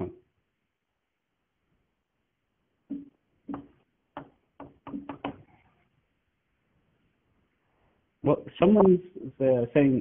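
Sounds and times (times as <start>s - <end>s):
chalk tapping on blackboard: 2.9s - 5.4s.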